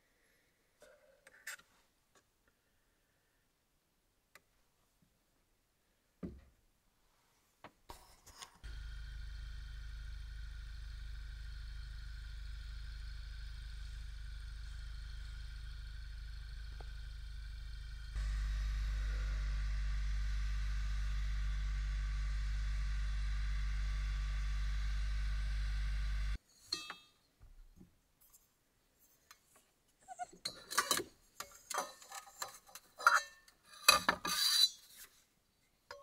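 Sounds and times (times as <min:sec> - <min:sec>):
small appliance motor humming: 0:08.6 - 0:26.4.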